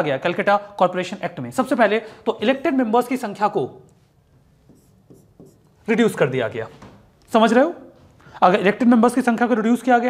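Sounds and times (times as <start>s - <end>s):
pen strokes on display: 4.6s - 5.8s
person speaking: 4.7s - 9.9s.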